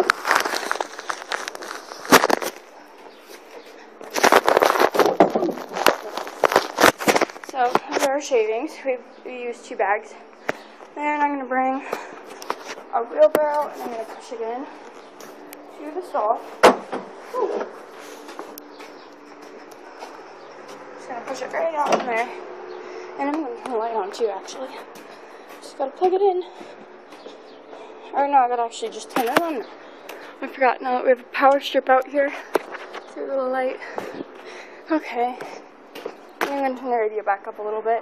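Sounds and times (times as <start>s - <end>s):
crackling and clattering of handled objects: 0.0s - 8.2s.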